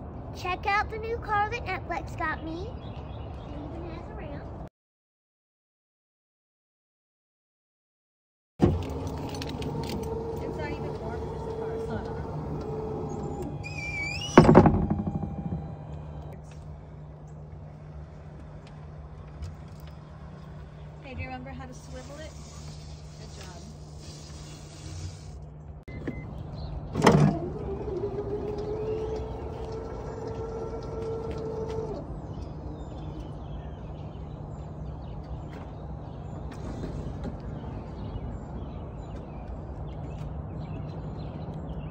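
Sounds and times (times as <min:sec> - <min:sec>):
wheelchair motors whining: 0:08.6 - 0:16.7, 0:21.6 - 0:33.6
van idling: 0:08.7 - 0:39.8
loud clunk: 0:14.2 - 0:16.4.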